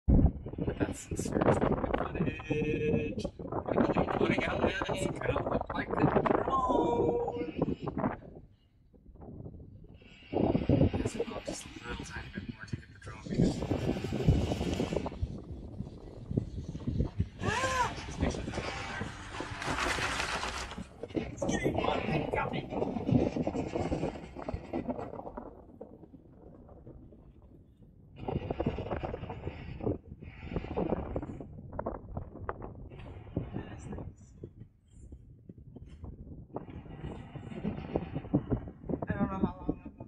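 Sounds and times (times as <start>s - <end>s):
wind gusts on microphone: 0.0s - 40.0s
indistinct voices: 0.6s - 7.9s, 17.4s - 19.8s, 20.7s - 23.0s.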